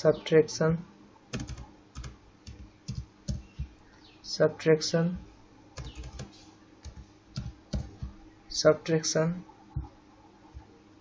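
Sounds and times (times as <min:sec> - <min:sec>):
computer keyboard typing: 0:01.3 - 0:03.8, 0:05.2 - 0:08.2.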